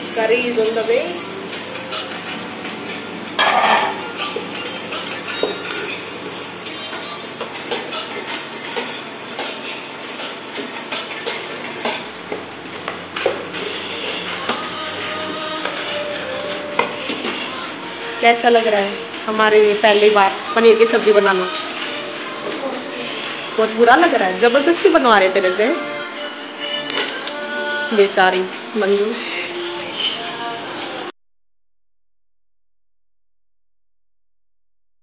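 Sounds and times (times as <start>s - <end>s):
onions sizzling: 0.0s - 12.0s
spatula scraping metal saucepan: 3.4s - 12.0s.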